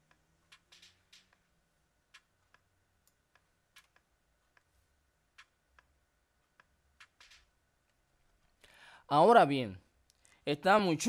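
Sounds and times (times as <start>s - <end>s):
mouse and keyboard clicks: 0.0s - 1.4s, 2.1s - 4.7s, 6.5s - 7.5s.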